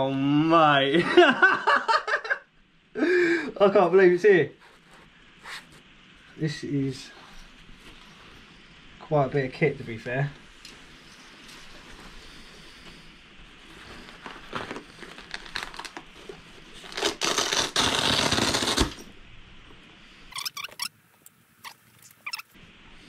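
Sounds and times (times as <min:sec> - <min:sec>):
fabric backpack rustling: 0:11.2 - 0:18.8.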